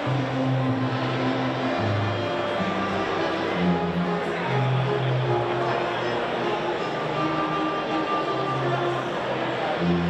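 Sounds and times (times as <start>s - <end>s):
string ensemble bowed notes: 0.0s - 10.0s.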